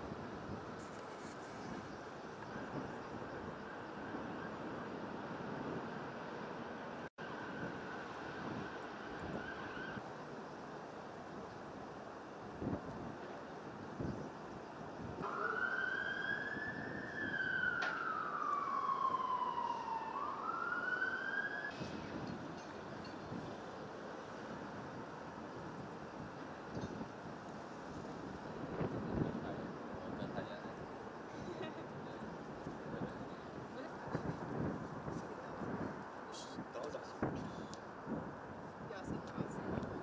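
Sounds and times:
wind noise on microphone: 0.0s - 10.1s, 12.4s - 20.2s, 21.7s - 40.0s
siren wailing: 7.2s - 10.0s, 15.2s - 22.2s.

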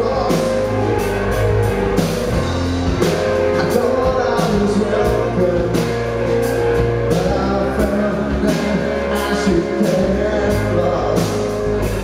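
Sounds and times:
bass guitar: 0.0s - 12.0s
drum kit with cymbals: 0.0s - 12.0s
electric guitar: 0.0s - 12.0s.

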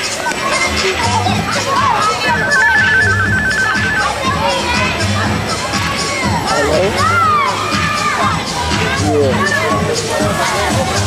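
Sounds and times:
crowd talking and shouting: 0.0s - 11.0s
music with bass beat: 0.0s - 11.0s
warbling electronic tone: 2.2s - 4.6s.

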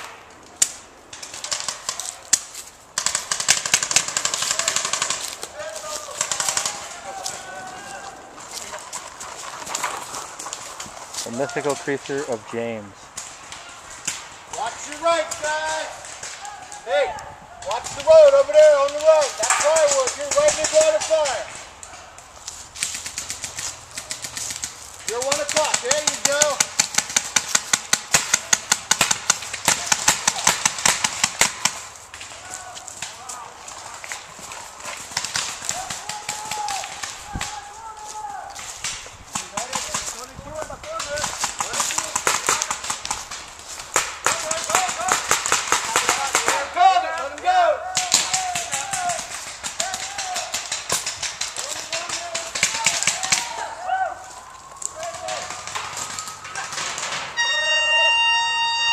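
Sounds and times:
paintball markers firing: 0.0s - 7.1s, 22.8s - 33.4s, 34.0s - 37.6s, 38.6s - 46.8s, 47.9s - 53.6s
distant players shouting: 3.9s - 10.4s, 31.5s - 38.7s, 44.1s - 58.9s.

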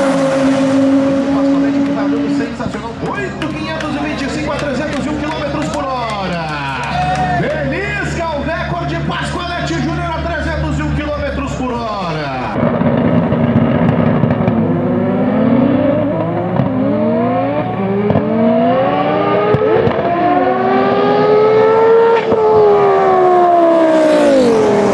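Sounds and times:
racing car engine revving: 0.0s - 11.6s, 12.5s - 24.9s.

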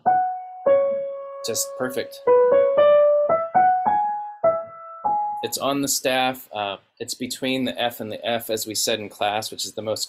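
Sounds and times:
piano single notes: 0.0s - 5.7s.

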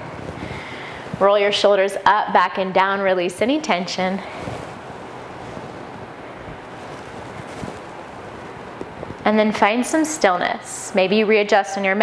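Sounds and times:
steady rushing noise: 0.0s - 10.0s.

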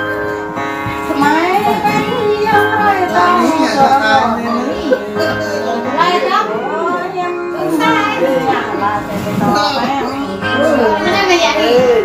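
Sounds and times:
strummed acoustic guitar: 0.0s - 12.0s
person singing: 1.2s - 12.0s.

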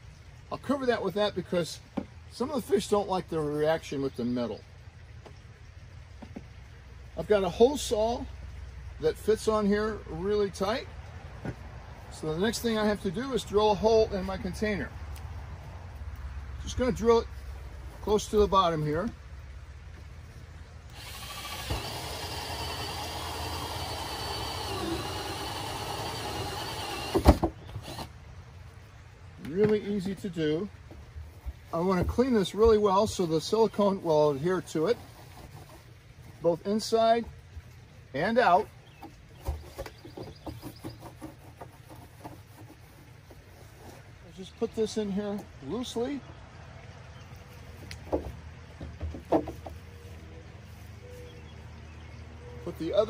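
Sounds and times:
drill whining through plastic: 20.9s - 28.1s.

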